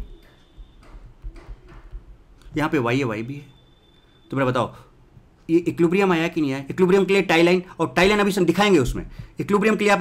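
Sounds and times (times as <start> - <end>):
stylus tapping on tablet: 0.0 - 2.6.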